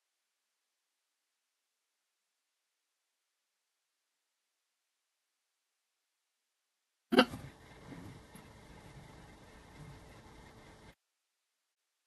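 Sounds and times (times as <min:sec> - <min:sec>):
faint room noise: 0:00.0 - 0:12.0
person hiccup-like vocal sound: 0:07.1 - 0:07.4.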